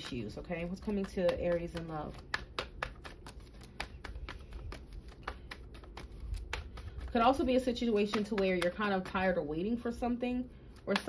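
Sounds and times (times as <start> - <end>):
cards being shuffled: 0.0 - 9.4, 10.7 - 11.0.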